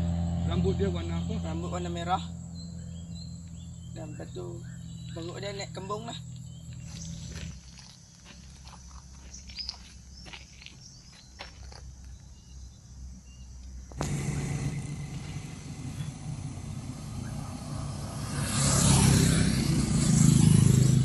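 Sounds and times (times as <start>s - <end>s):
roadside rumbling noise: 0.0s - 21.0s.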